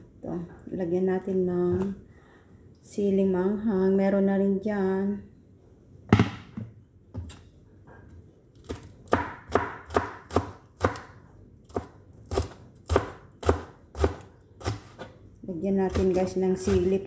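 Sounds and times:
knife chopping on cutting board: 0:08.7 - 0:15.1.

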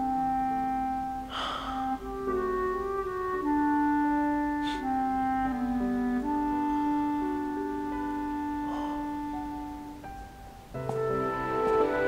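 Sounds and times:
soft background score: 0:00.0 - 0:12.0
sharp breath or sniff: 0:01.3 - 0:02.0, 0:08.7 - 0:09.3.

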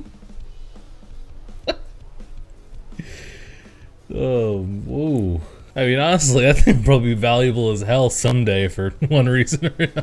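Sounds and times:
man laughing: 0:06.4 - 0:06.9, 0:08.9 - 0:10.0.

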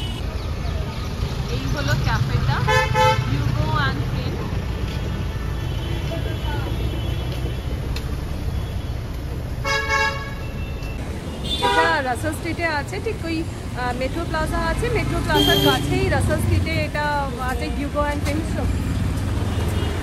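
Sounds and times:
street traffic rumbling: 0:00.0 - 0:20.0
car horn honks: 0:02.7 - 0:03.3, 0:15.3 - 0:15.9.

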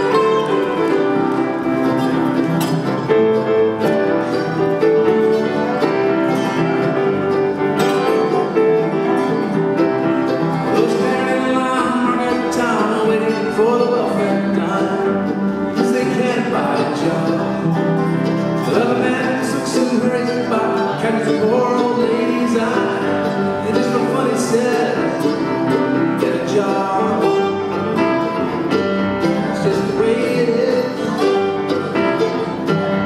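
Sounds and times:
grand piano: 0:00.0 - 0:33.0
mandolin: 0:00.0 - 0:33.0
slide guitar gliding: 0:00.0 - 0:33.0.

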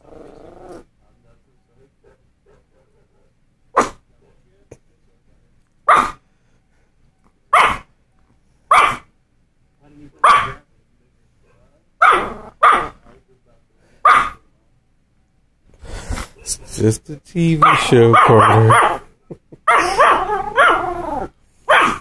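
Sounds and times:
small dog barking: 0:03.8 - 0:04.0, 0:05.8 - 0:06.2, 0:07.5 - 0:07.9, 0:08.7 - 0:09.1, 0:10.2 - 0:10.6, 0:12.0 - 0:13.1, 0:14.0 - 0:14.4, 0:17.6 - 0:19.1, 0:19.7 - 0:22.0.

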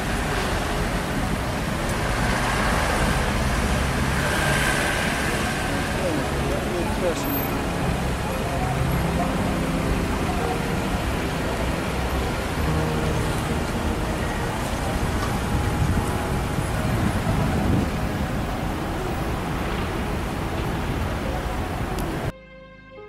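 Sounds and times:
cars passing and idling: 0:00.0 - 0:22.3.

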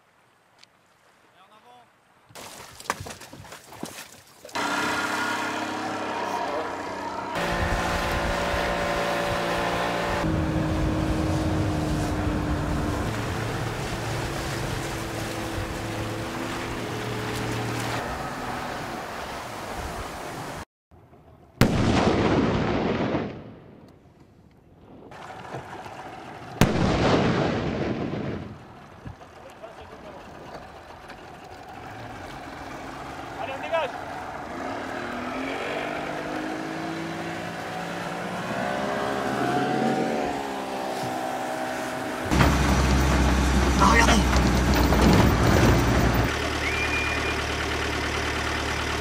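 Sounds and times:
outboard motor running: 0:04.5 - 0:19.2, 0:28.7 - 0:34.5, 0:37.6 - 0:49.0
explosions: 0:21.6 - 0:23.8, 0:26.6 - 0:28.7.

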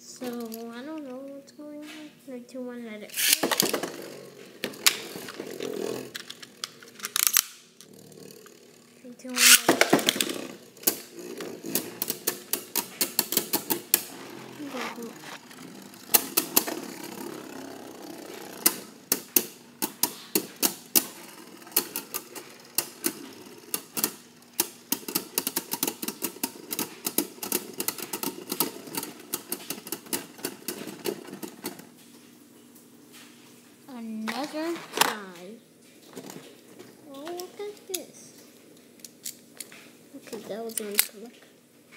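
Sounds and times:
spinning tops whirring: 0:03.0 - 0:32.0
spinning tops clacking together: 0:03.1 - 0:08.7, 0:09.3 - 0:31.8.

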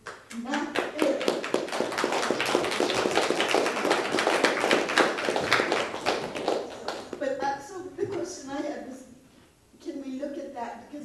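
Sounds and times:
audience applauding: 0:00.7 - 0:07.2.

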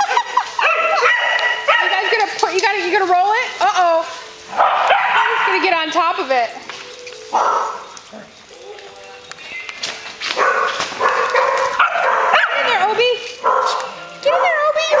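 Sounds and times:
small dogs barking and yipping: 0:00.0 - 0:06.0, 0:07.2 - 0:09.2, 0:10.2 - 0:15.0.

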